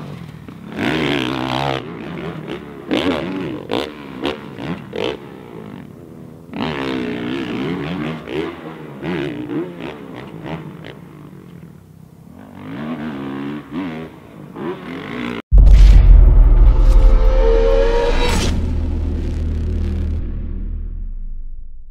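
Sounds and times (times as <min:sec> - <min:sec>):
motocross bike engine revving: 0:00.6 - 0:11.5.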